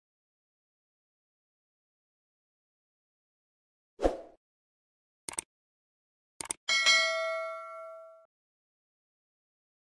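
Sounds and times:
notification bell ding: 6.7s - 8.3s.

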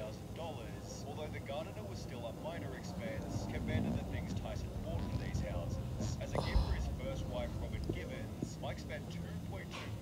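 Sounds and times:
quiet indistinct speech: 0.0s - 10.0s.

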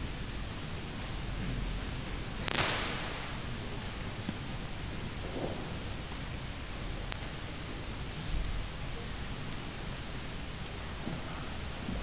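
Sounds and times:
hall room tone hiss: 0.0s - 12.0s
faint click: 2.4s - 3.4s.

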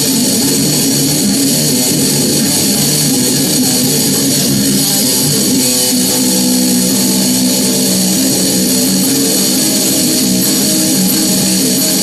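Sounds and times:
distorted electric guitar notes: 0.0s - 12.0s.

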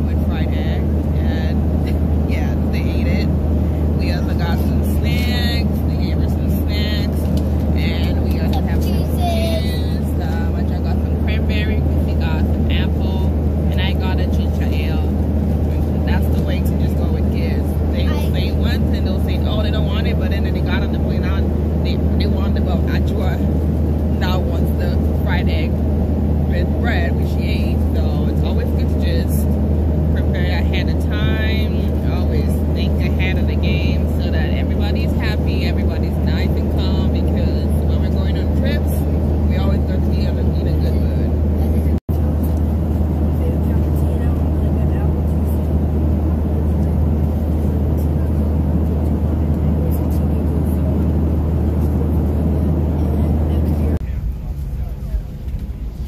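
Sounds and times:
airliner cabin engine drone: 0.0s - 56.0s
person talking: 4.0s - 15.1s, 15.7s - 23.5s.

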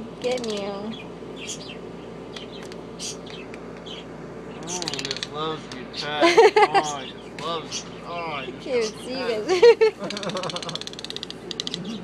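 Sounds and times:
steady low hum: 0.0s - 12.0s
toucan squeaks and clicks: 4.6s - 5.3s, 10.1s - 12.0s.

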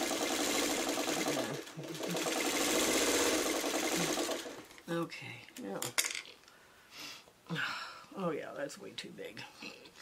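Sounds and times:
sewing machine stitching: 0.0s - 4.8s.

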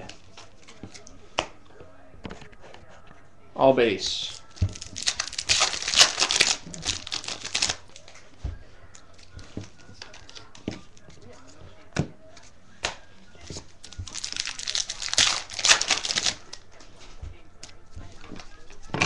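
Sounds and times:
foil wrapper crinkling: 4.3s - 8.2s, 13.8s - 16.8s.

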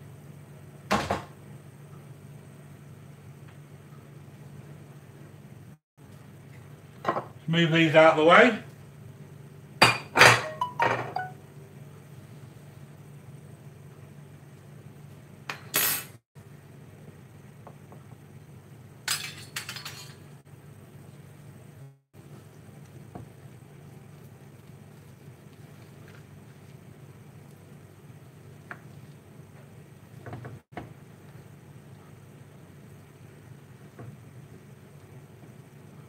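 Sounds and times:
steady low hum: 0.0s - 15.6s, 16.4s - 36.0s
dishes clattering: 9.8s - 11.4s, 19.1s - 20.2s.

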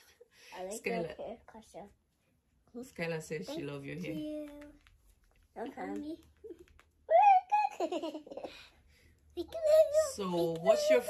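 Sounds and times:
girl giggling: 7.1s - 8.7s.

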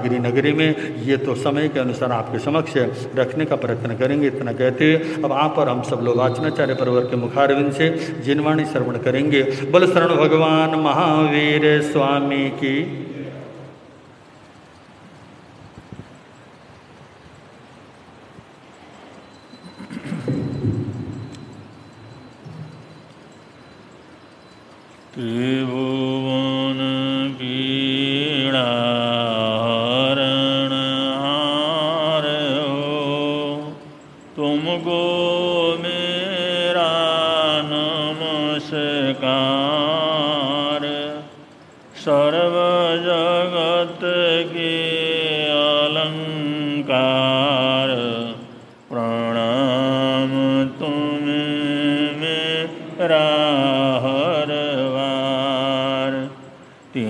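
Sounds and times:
man chanting: 0.0s - 13.8s, 25.2s - 57.0s.

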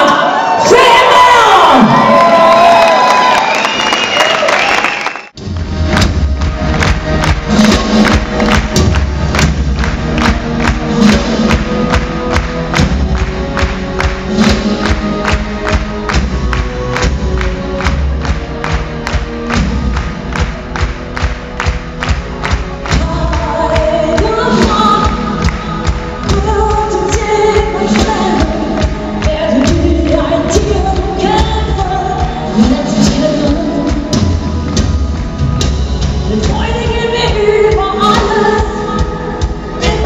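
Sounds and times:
rock band and orchestra playing: 5.4s - 40.0s.

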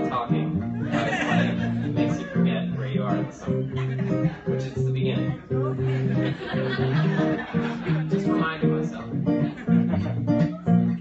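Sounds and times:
acoustic guitar rhythmic pattern: 0.0s - 11.0s.

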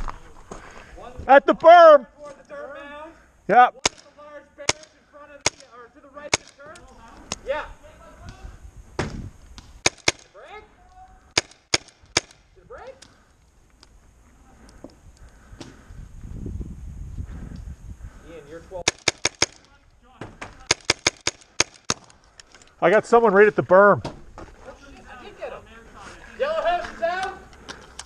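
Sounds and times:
paintball markers firing: 9.0s - 10.3s, 11.4s - 12.4s, 18.8s - 19.8s, 20.4s - 22.2s.

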